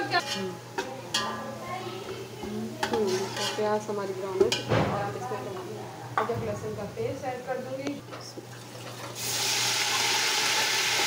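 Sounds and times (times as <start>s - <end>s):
metal turner scraping a pot: 0.0s - 1.5s, 2.8s - 3.9s
onions frying in oil: 8.3s - 11.0s.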